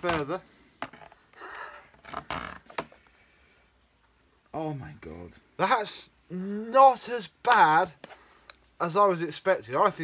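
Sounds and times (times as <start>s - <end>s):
hard plastic scraping rustles: 0.0s - 3.1s.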